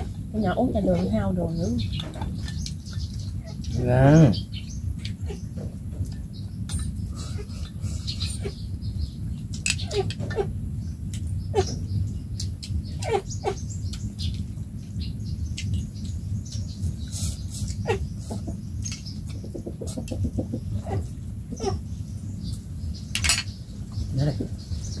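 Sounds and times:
steady low rumble: 0.0s - 25.0s.

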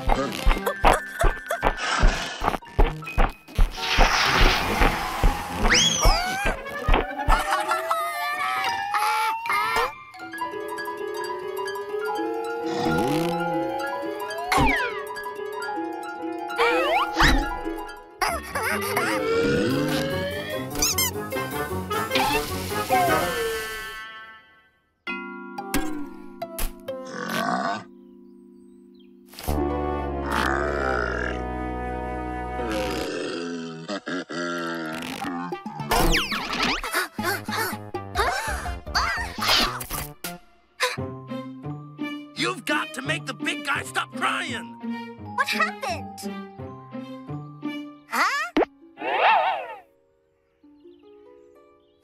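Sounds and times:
cartoon music: 5.2s - 24.2s, 35.3s - 39.8s, 42.4s - 46.7s.

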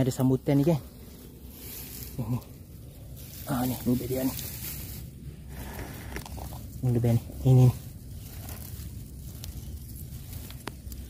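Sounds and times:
low steady rumble: 0.0s - 11.0s
man speaking: 3.4s - 4.4s, 6.8s - 7.8s.

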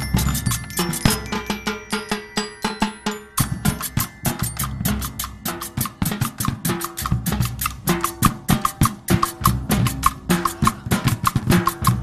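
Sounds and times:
ringing held tones: 0.0s - 6.7s
marching drum line: 0.0s - 12.0s.

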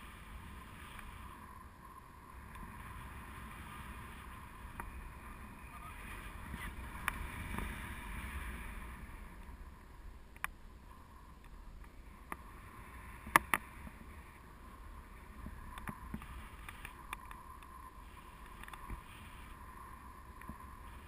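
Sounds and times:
wind rushing over microphone: 0.0s - 21.0s
faint clicks: 10.3s - 10.6s, 13.2s - 14.0s, 15.4s - 19.1s, 20.3s - 20.7s.

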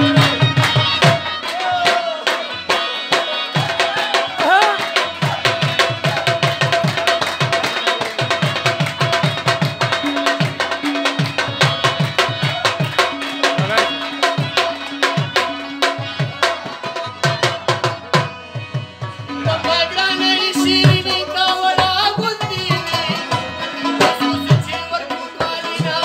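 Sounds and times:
hand drums in fast rhythm: 0.0s - 26.0s
harmonium holding long notes: 0.0s - 26.0s.

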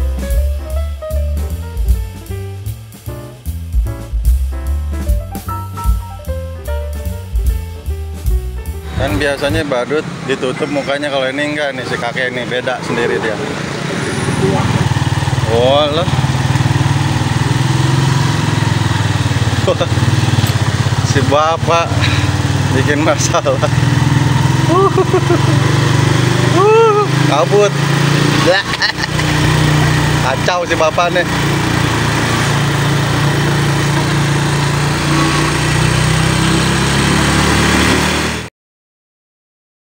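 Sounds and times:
motorcycle engine idling: 14.4s - 36.2s.

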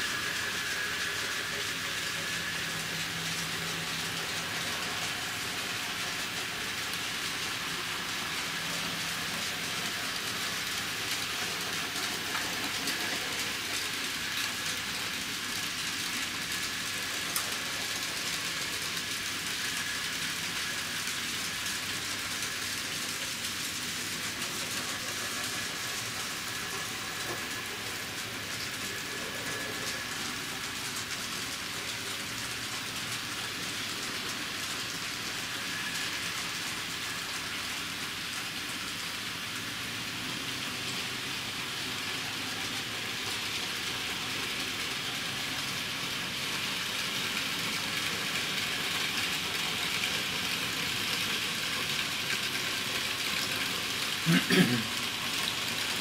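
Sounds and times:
model train wheels rolling on rails: 0.0s - 56.0s.

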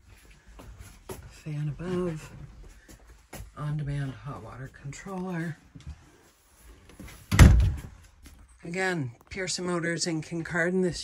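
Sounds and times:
door shutting with heavy thud: 7.3s - 7.9s.

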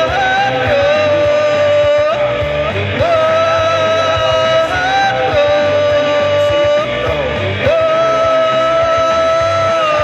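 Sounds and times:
amplified rock band: 0.0s - 10.0s
man singing rock song: 0.0s - 10.0s.

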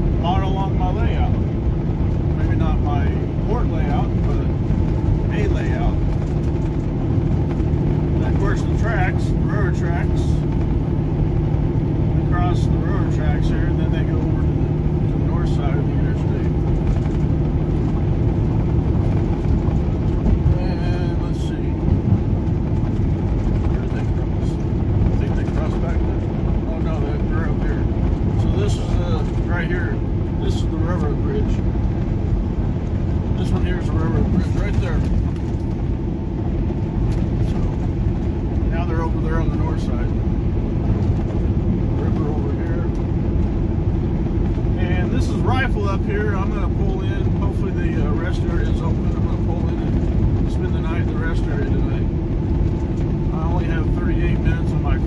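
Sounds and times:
diesel engine drone: 0.0s - 55.0s
road and wind noise: 0.0s - 55.0s.

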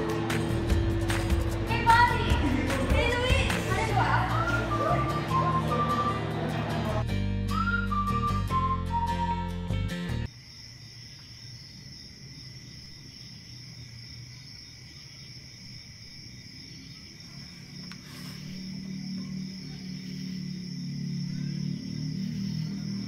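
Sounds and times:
low music drone: 0.0s - 7.3s
crickets chirring: 10.2s - 23.0s.

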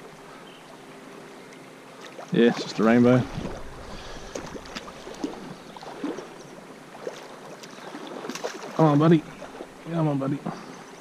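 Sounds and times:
shallow river water running: 0.0s - 11.0s
fish splashing: 2.0s - 9.8s.

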